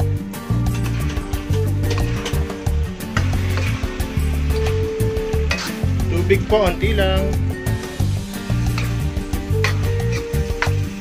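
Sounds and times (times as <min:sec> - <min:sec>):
background music with steady beat: 0:00.0 - 0:11.0
food sizzling in a wok: 0:00.0 - 0:11.0
water poured into hot wok: 0:00.4 - 0:06.2, 0:07.4 - 0:11.0
spoon stirring: 0:00.6 - 0:06.1, 0:07.8 - 0:11.0.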